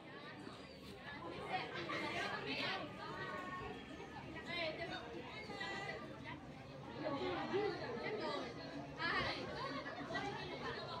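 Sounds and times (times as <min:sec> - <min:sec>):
voices talking and calling out: 0:00.0 - 0:11.0.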